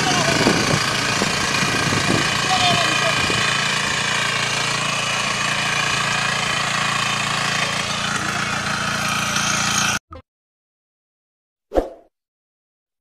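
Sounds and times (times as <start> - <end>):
small tiller engine running: 0.0 - 10.0.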